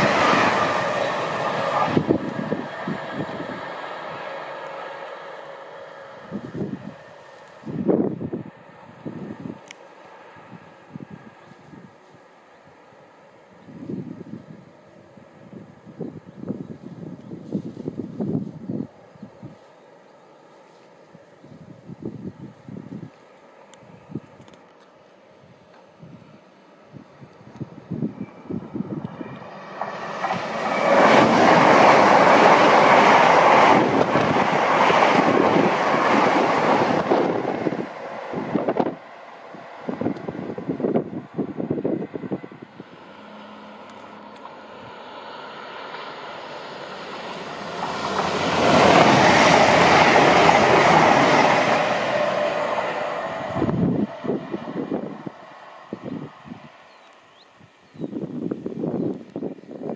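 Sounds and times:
high-speed train passing: 0:00.0 - 0:59.9.

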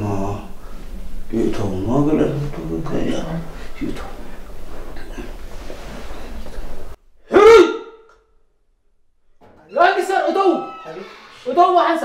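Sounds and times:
person crying out aah: 0:07.3 - 0:08.0.

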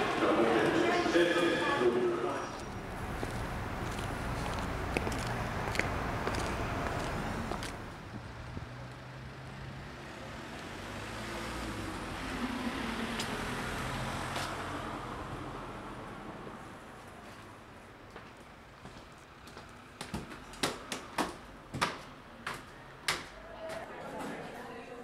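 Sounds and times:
cars passing on street: 0:00.0 - 0:23.5.

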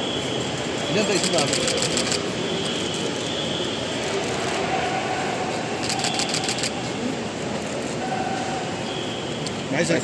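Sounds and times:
crowd and traffic rumble: 0:00.0 - 0:10.0.

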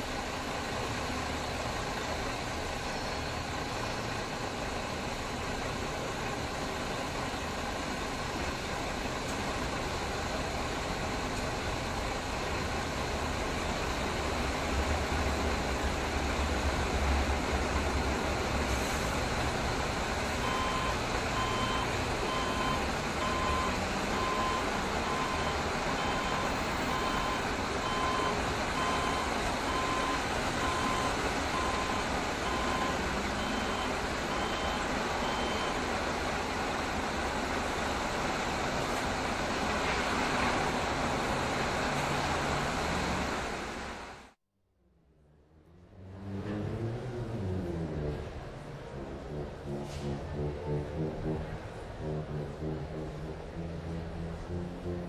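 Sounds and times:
street traffic rumble: 0:00.0 - 0:55.0.

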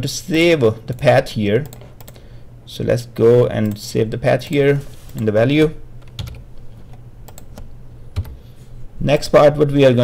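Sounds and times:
steady low hum: 0:00.0 - 0:10.0
computer keyboard keystrokes: 0:00.9 - 0:02.2, 0:06.0 - 0:08.4.

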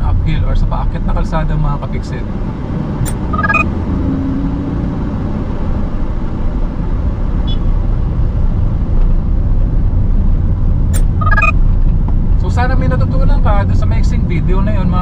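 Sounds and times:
car engine rumble: 0:00.0 - 0:15.0
road noise: 0:00.0 - 0:15.0
short electronic chime: 0:03.1 - 0:03.6, 0:11.0 - 0:11.5.

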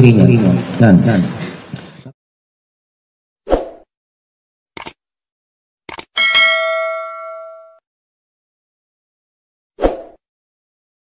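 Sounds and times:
bell-like chime ringing: 0:06.2 - 0:07.8.

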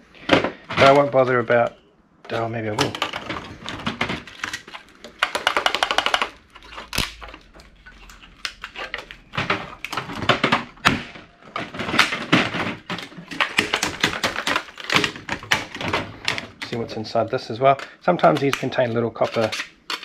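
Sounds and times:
clicking and rattling of plastic parts: 0:00.2 - 0:20.0.

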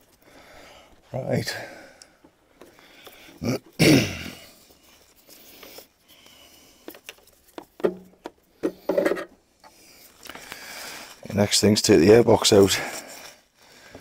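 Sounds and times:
clicks and knocks of car parts: 0:07.6 - 0:09.3.

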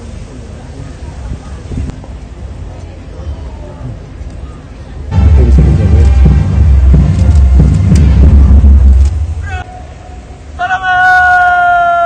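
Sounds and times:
band music with drums: 0:05.1 - 0:09.6.

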